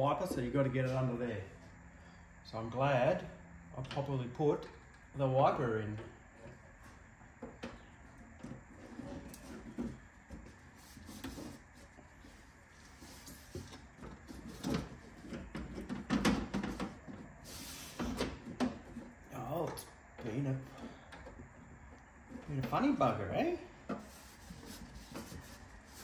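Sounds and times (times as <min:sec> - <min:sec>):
plastic panel knocking and rubbing: 0:13.4 - 0:17.4.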